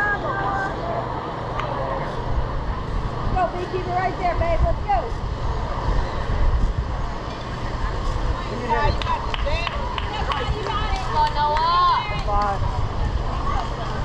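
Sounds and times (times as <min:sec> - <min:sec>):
steady low rumble: 0:00.0 - 0:14.0.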